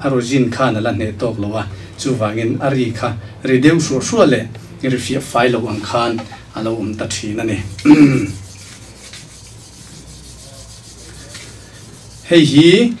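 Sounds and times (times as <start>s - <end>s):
person speaking: 5.5s - 6.9s
rosin rubbing on bow hair: 8.2s - 12.8s.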